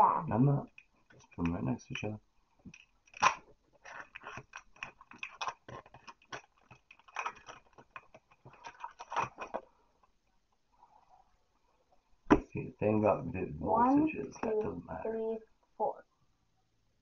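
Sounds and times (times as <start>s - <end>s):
trading cards clicking and rustling: 2.6s - 9.7s.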